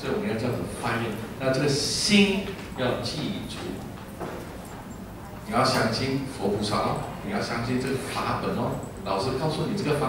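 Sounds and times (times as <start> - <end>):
man talking through microphone: 0.0 - 4.0, 5.4 - 10.0
low room noise: 0.0 - 10.0.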